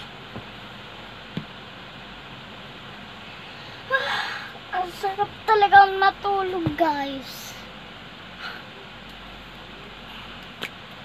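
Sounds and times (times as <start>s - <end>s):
steady background noise: 0.0s - 11.0s
girl's voice: 3.9s - 7.7s.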